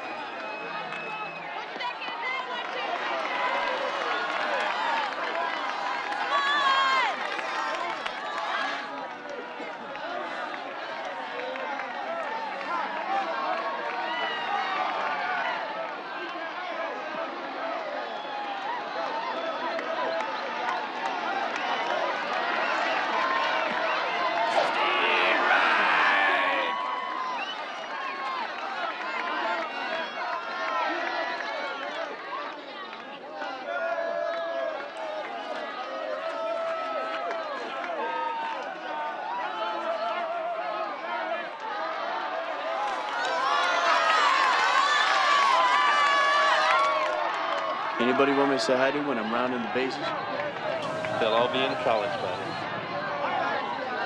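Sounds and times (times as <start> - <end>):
crowd shouting and cheering: 0.0 - 54.0.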